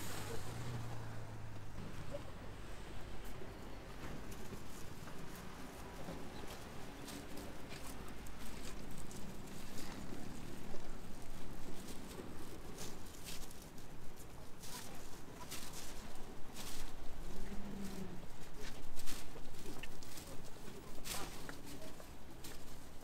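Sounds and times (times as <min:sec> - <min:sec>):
low city hum: 0:00.0 - 0:23.0.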